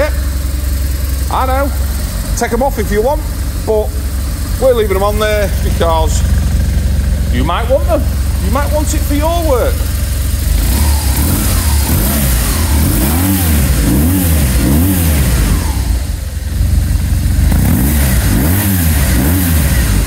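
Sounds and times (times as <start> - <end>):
motorcycle engine idling and revving: 0.0 - 20.0.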